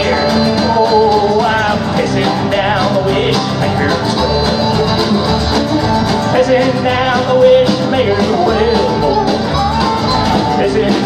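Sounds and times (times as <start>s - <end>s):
country band playing: 0.0s - 11.0s
fiddle melody: 0.0s - 11.0s.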